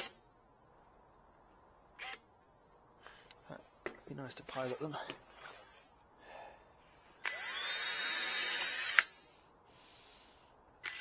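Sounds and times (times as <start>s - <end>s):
sharp clicks: 8.6s - 9.1s.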